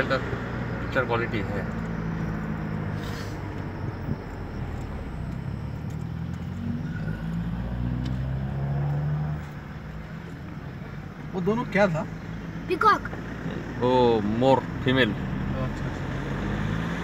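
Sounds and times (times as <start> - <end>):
car engine hum: 0.0 - 17.0.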